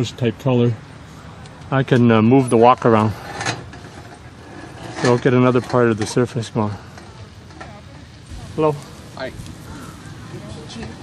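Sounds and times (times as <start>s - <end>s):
faint gas stove hiss: 0.8s - 11.0s
wok scraping on metal grate: 3.0s - 7.7s.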